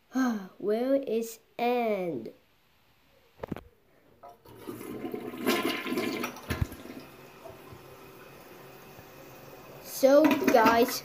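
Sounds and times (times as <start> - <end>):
toilet flushing: 4.4 - 11.0.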